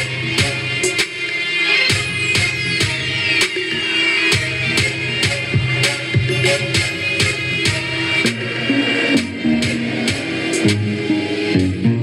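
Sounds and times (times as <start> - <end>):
dance music beat: 0.0 - 12.0.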